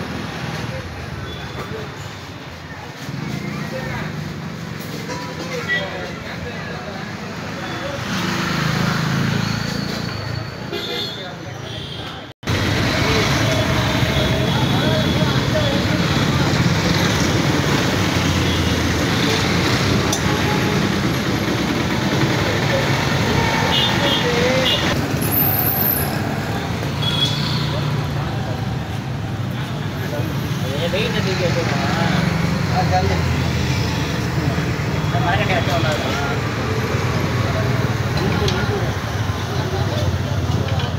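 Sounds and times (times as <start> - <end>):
road traffic: 0.0 - 40.9
people talking: 5.0 - 8.2, 12.8 - 25.0, 27.4 - 40.9.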